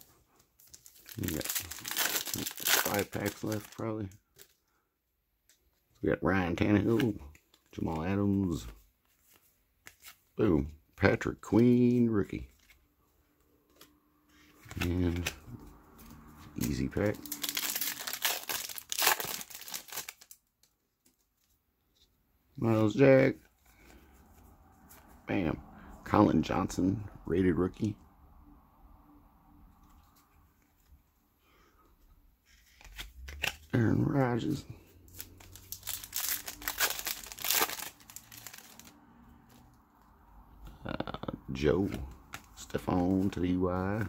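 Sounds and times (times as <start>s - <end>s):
foil wrapper crinkling and tearing: 0.6s - 4.6s, 16.6s - 20.5s, 35.1s - 38.9s.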